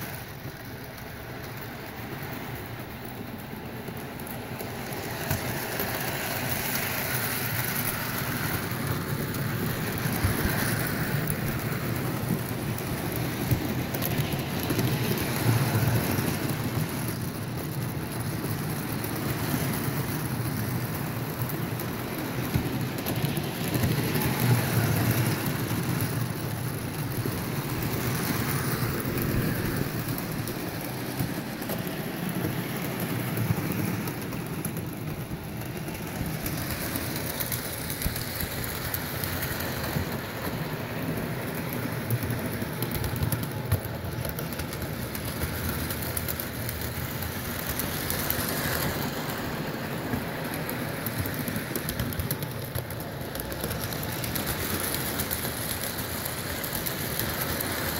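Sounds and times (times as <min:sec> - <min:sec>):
model train wheels clattering: 0:00.0 - 0:57.9.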